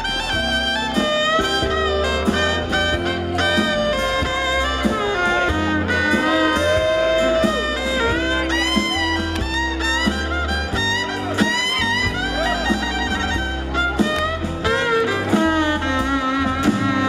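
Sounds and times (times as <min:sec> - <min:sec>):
bass line: 0:00.0 - 0:17.0
fiddle melody: 0:00.0 - 0:17.0.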